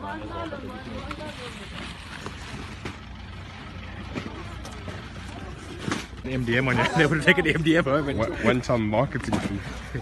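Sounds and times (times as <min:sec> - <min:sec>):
faint voices: 0:00.0 - 0:10.0
low rumble of vehicles: 0:00.0 - 0:10.0.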